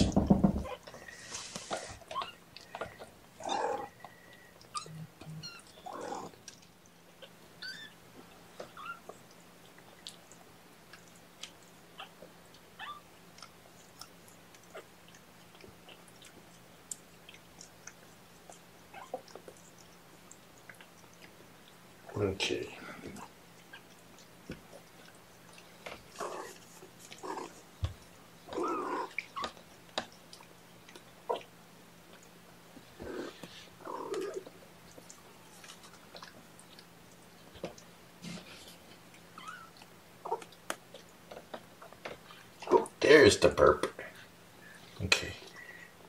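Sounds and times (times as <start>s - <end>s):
rustling: 0.0s - 3.1s
kitten suckling wet clicks: 13.4s - 21.8s.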